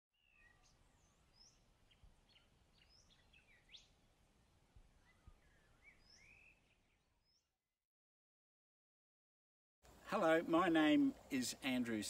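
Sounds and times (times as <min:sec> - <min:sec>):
bird chirps and whistles: 0:05.1 - 0:06.8.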